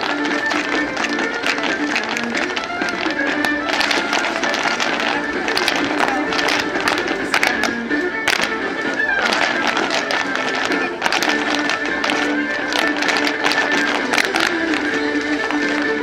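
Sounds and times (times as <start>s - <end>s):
irish dance music: 0.0s - 16.0s
shoes tapping on pavement: 0.0s - 16.0s.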